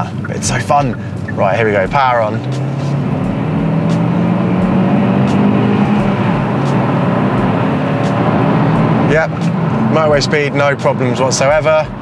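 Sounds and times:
car engine accelerating: 0:00.0 - 0:12.0.

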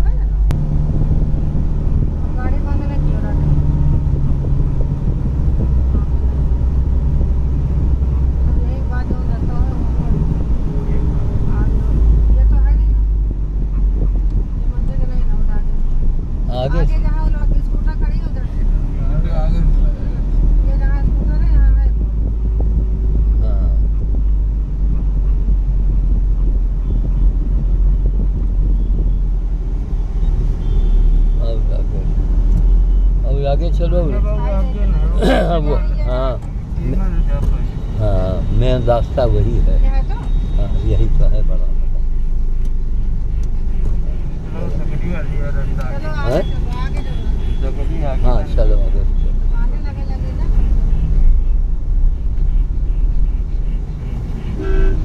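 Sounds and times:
car engine and road rumble: 0:00.0 - 0:55.0
indistinct voices: 0:33.2 - 0:42.1.

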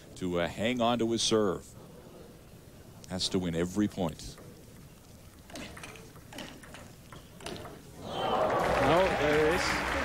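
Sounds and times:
crowd applause: 0:08.0 - 0:10.0.

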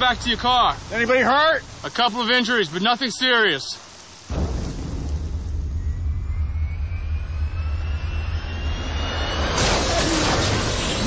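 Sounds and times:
jet engine rumble: 0:04.3 - 0:11.0
jet rushing noise: 0:04.3 - 0:11.0
jet engine whine rising: 0:05.4 - 0:11.0.

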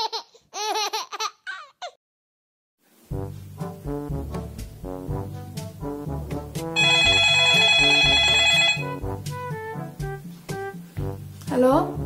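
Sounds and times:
light background music: 0:03.1 - 0:12.0
phone ringtone trilling: 0:06.8 - 0:09.0.

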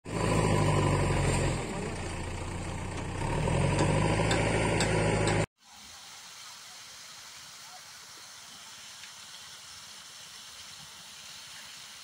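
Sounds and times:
engine humming: 0:00.0 - 0:05.5.

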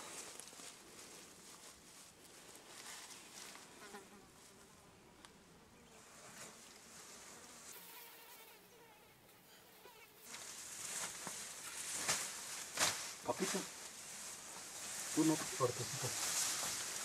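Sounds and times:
insect buzzing: 0:06.6 - 0:12.3
hissing rustle: 0:10.2 - 0:17.0.

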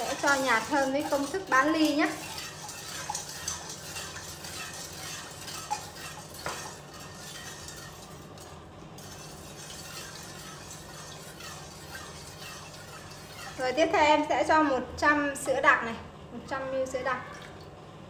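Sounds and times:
spoon clinking against metal pot: 0:00.0 - 0:08.4, 0:09.0 - 0:13.9
spoon stirring liquid in pot: 0:00.0 - 0:14.3.

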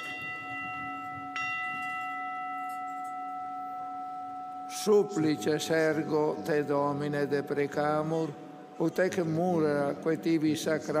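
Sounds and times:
altar bell ringing: 0:00.0 - 0:11.0.

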